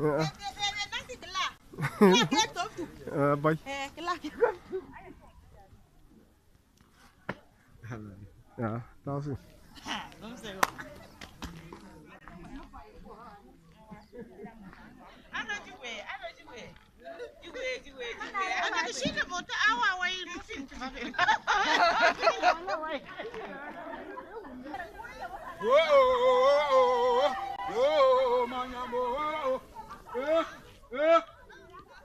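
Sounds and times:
quiet chatter of people: 0.0s - 32.0s
man talking: 1.8s - 3.6s.

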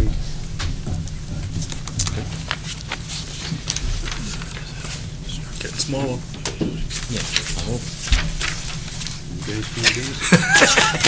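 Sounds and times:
low room hum: 0.0s - 11.0s
paper rustling and tapping: 1.4s - 11.0s.

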